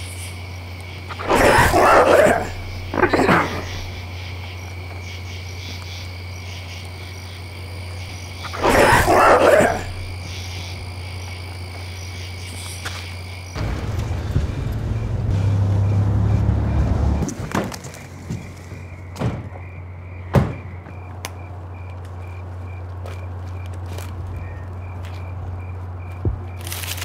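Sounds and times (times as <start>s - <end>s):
frogs croaking: 0.0s - 23.8s
crickets chirping: 0.0s - 27.0s
low hum: 13.6s - 17.3s
car engine rumble: 13.6s - 18.9s.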